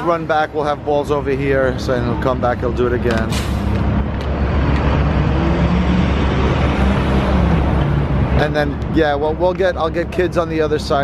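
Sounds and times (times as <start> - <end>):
city traffic noise: 0.0 - 11.0.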